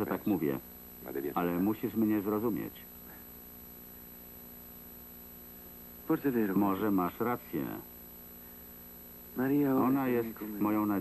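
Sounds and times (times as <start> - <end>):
electrical mains hum: 0.0 - 11.0
faint high-pitched whine: 0.0 - 11.0.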